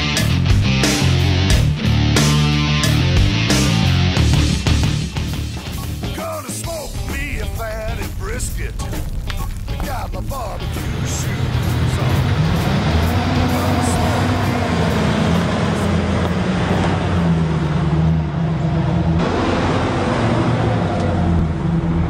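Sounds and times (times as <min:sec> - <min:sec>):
truck engine revving: 0:00.0 - 0:22.0.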